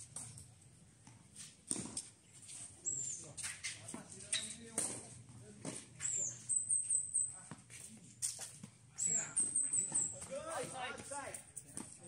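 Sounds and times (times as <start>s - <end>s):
bird chirping: 6.0s - 7.4s.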